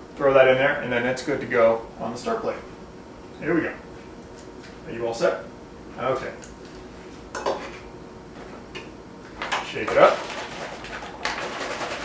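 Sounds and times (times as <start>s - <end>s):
foil pack crinkly rustling: 9.9s - 12.0s.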